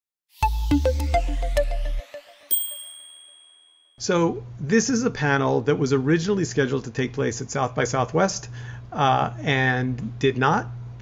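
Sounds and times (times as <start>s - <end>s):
logo intro music: 0.3s - 2.9s
bright high ding: 2.5s - 4.0s.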